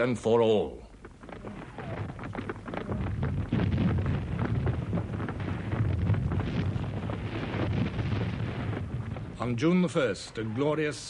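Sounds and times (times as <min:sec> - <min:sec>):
artillery gun blasts and shell bursts: 0:01.0 - 0:10.6.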